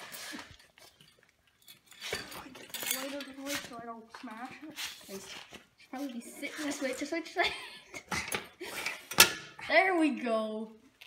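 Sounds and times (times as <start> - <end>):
tools scraping metal frame: 1.7 - 3.8.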